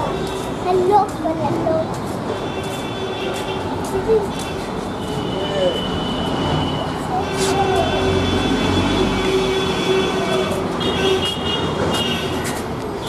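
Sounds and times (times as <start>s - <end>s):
traffic rumble: 0.0s - 13.0s.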